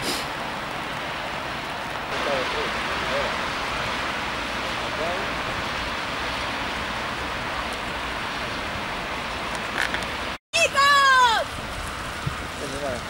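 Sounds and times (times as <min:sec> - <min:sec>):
outdoor hiss: 0:00.0 - 0:13.0.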